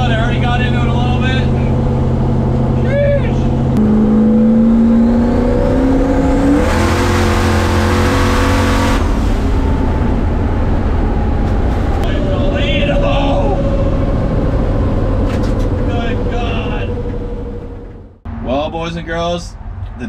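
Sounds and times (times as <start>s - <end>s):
race car engine revving: 0.0s - 18.3s.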